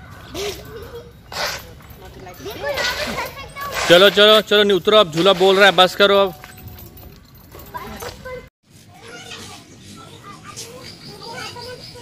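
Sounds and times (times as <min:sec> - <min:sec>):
child's voice: 0:07.7 - 0:12.0.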